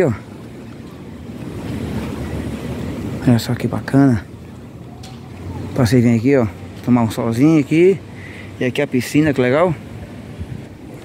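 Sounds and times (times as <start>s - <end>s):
wind blowing across microphone: 0.0s - 11.0s.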